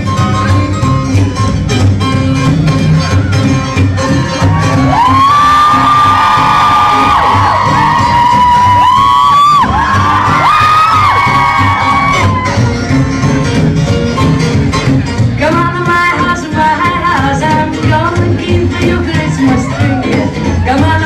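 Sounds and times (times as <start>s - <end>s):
stage music with steady beat: 0.0s - 21.0s
audience cheering and whooping: 3.0s - 13.0s, 19.3s - 20.8s.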